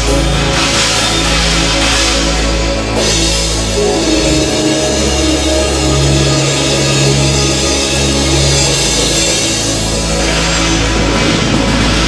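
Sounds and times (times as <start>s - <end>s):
drum kit playing: 0.0s - 12.0s
rock backing track: 0.0s - 12.0s.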